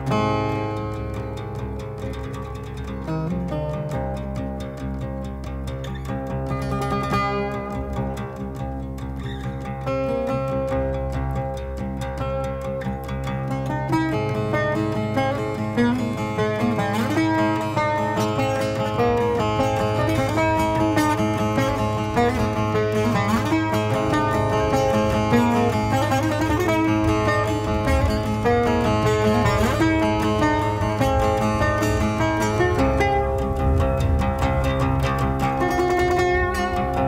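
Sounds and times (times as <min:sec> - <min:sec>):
plucked lute melody: 0:00.0 - 0:37.0.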